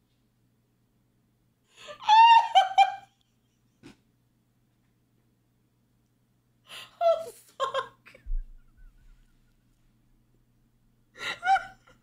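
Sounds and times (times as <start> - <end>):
person squealing laugh: 1.8 - 3.2.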